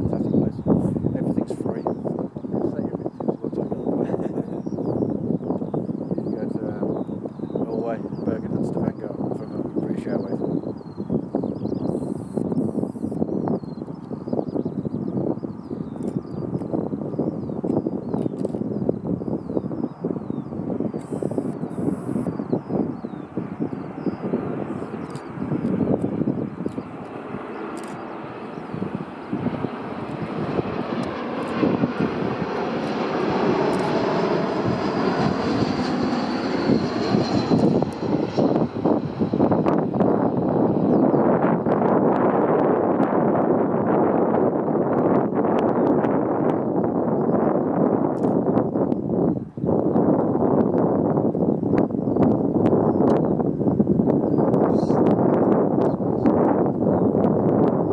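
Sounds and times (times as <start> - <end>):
jet engine roar: 0.0 - 57.9
jet engine whine: 0.0 - 57.9.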